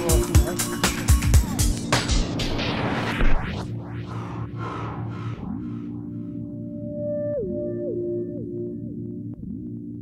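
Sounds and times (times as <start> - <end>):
whooshing swells: 1.6 - 6.7
low drone: 2.2 - 7.9.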